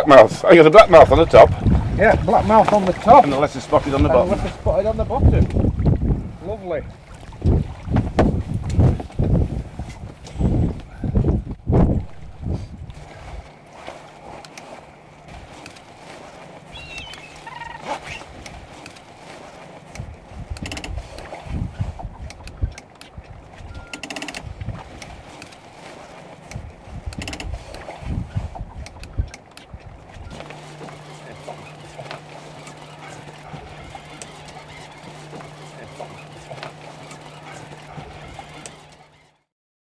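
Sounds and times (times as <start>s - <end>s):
steady low hum: 0.0s - 39.5s
wind on microphone: 0.9s - 3.0s, 3.9s - 13.5s, 20.0s - 25.0s, 26.5s - 30.4s.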